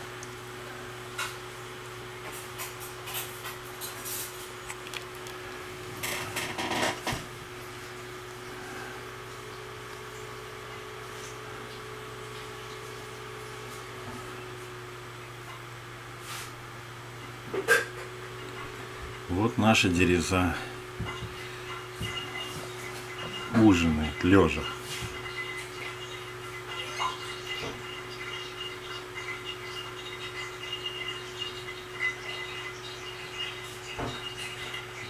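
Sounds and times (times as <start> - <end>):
steady low hum: 0.0 - 35.0.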